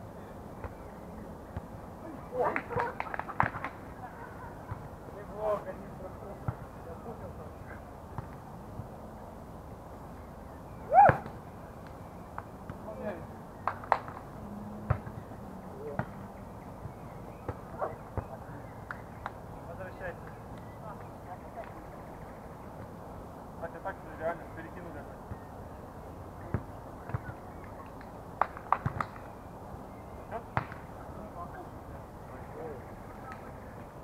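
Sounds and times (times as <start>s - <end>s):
hands slapping volleyball: 27.9s - 29.2s.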